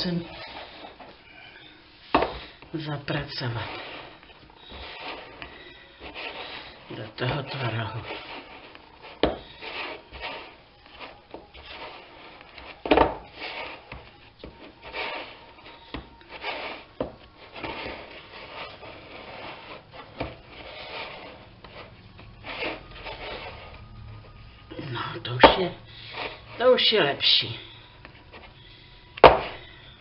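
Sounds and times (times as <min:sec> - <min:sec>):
spatula scraping a ceramic bowl: 0:03.2 - 0:24.4.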